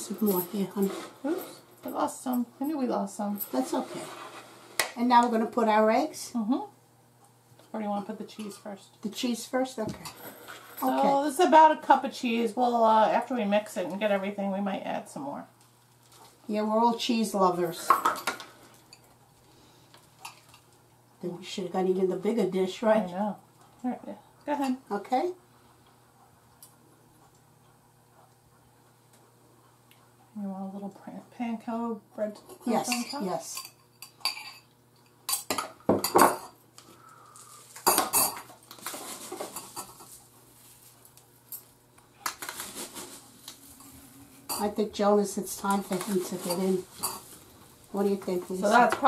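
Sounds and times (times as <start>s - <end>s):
spoons clinking against bowls: 32.5s - 36.6s, 45.7s - 47.3s
spoon scraping: 45.5s - 47.4s.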